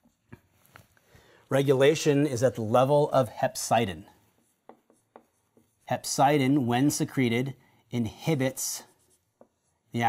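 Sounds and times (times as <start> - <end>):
marker tapping on whiteboard: 4.4 - 5.8, 9.3 - 9.8.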